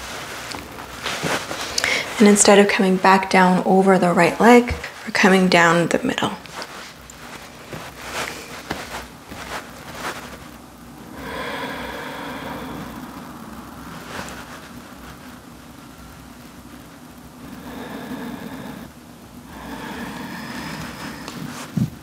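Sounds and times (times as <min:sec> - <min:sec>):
person exhaling slowly: 0:11.1 - 0:13.3.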